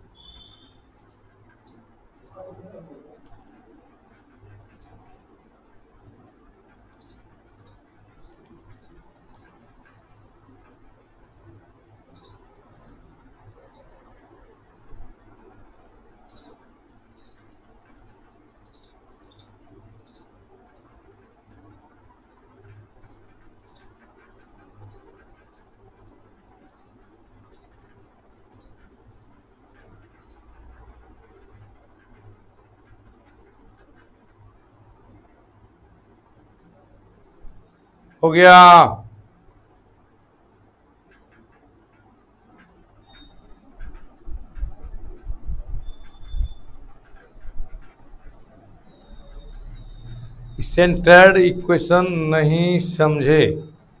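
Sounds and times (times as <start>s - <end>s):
high-pitched chirps: 0.0s - 4.9s
faint high-pitched chirp: 0.0s - 14.6s, 16.2s - 31.8s, 42.4s - 43.9s, 44.6s - 54.0s
low steady hum: 44.3s - 54.0s.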